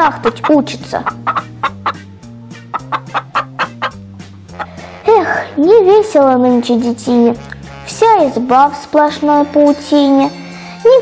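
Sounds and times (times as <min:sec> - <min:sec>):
hen clucking: 0:00.0 - 0:05.0
background music with bass line: 0:00.0 - 0:11.0.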